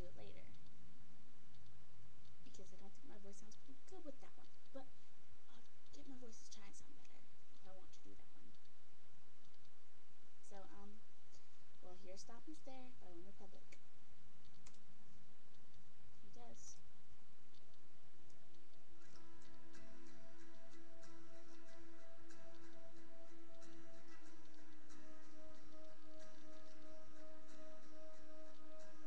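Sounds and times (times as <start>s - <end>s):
woman speaking: 0.0s - 0.6s, 2.5s - 8.5s, 10.4s - 11.0s, 11.8s - 13.8s, 16.4s - 16.8s
steady low hum: 0.0s - 29.0s
faint sharp clicks: 13.7s - 14.8s
sharp clicking: 14.4s - 14.9s.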